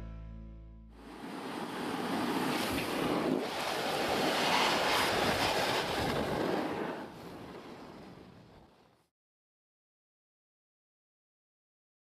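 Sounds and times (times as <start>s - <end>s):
rushing wind-like noise: 1.0s - 8.7s.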